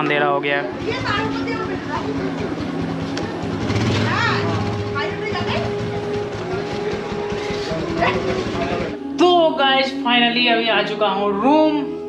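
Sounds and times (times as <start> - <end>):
people's voices: 0.0 - 12.0
motorcycle engine running: 0.1 - 9.0.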